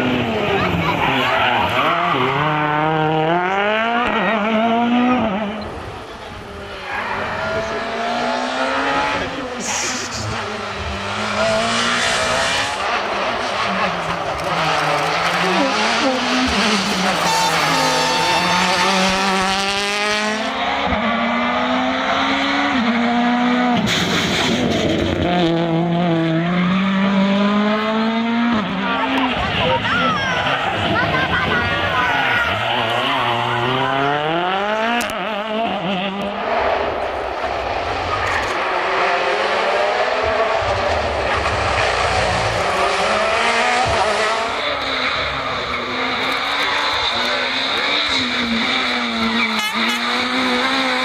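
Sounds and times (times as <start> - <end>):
rally car engines accelerating past: 0.0 - 51.0.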